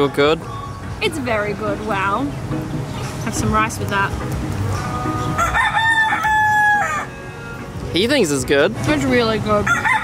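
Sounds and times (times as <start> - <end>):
rooster crowing: 5.3 - 7.5, 9.6 - 10.0.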